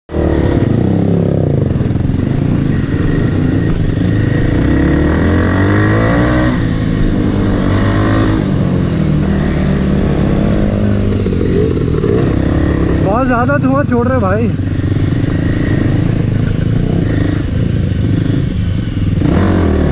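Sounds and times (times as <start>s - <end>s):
dirt bike engine revving: 0.1s - 19.9s.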